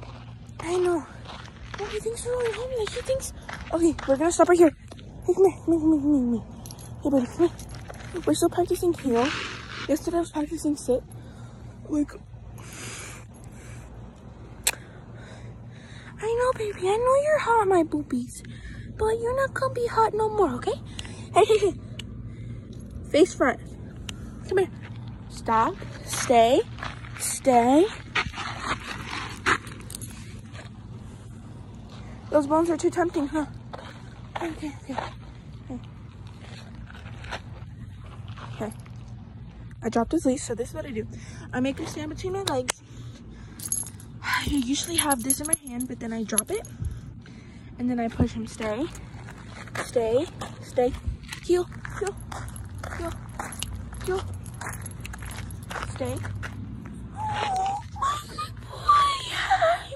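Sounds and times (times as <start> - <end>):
footsteps on gravel: 0.0 - 5.2, 6.9 - 10.5, 24.7 - 32.0, 33.5 - 39.5, 48.2 - 57.5
woman speaking: 0.6 - 11.1, 11.8 - 12.3, 16.2 - 21.8, 23.0 - 23.7, 24.4 - 28.0, 32.3 - 33.6, 34.3 - 35.9, 38.5 - 38.8, 39.8 - 42.8, 44.2 - 46.8, 47.8 - 49.0, 49.7 - 54.7, 55.7 - 56.4.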